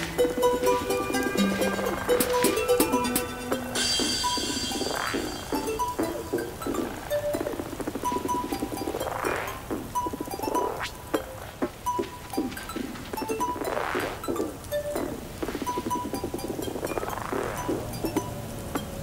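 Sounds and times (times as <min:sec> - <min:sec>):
acid synth line: 0:00.0 - 0:18.4.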